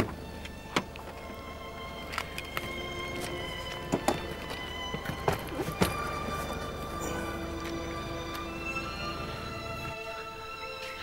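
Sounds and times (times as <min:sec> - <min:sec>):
car boot latch clicking: 0:00.0 - 0:01.3, 0:02.0 - 0:06.1.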